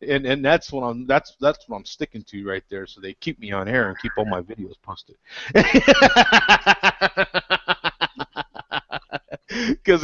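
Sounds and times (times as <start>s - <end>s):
man laughing hard: 5.5s - 9.9s.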